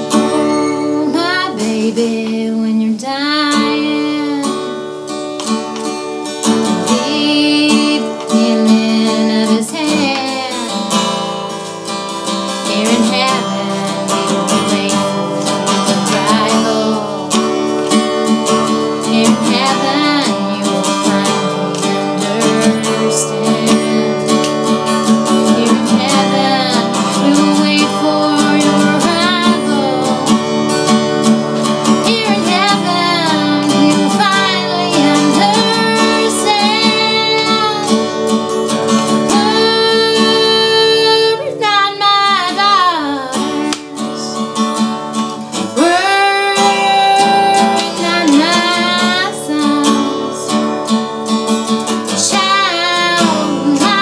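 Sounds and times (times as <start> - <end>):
woman singing: 0.0 - 5.5, 6.4 - 54.0
acoustic guitar strumming chords: 0.0 - 54.0.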